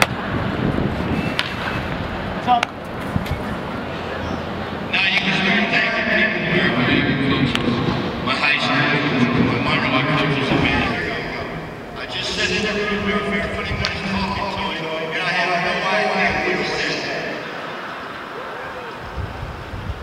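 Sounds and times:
echoing loudspeaker speech: 4.8 - 19.2.

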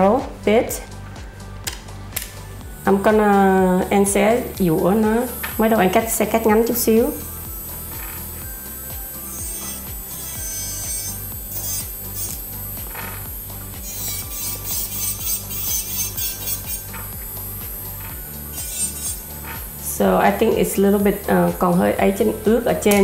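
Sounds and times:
music with steady beat: 0.0 - 23.0
electric nail file whining: 0.9 - 23.0.

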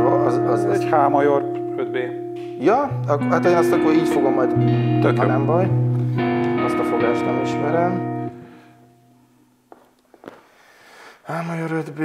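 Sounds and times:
guitar chord: 0.0 - 9.4.

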